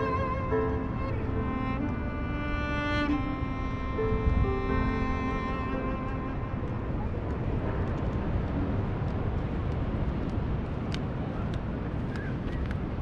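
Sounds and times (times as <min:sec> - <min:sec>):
ocean surf rumble: 0:00.0 - 0:13.0
wind: 0:00.0 - 0:13.0.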